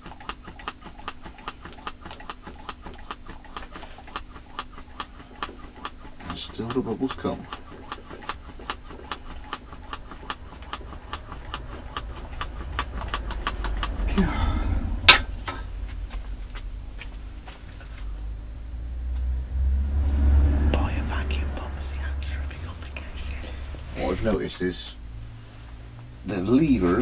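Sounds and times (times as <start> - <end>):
hand vacuum pump clicking strokes: 0.0 - 14.2
low rumble: 11.4 - 26.2.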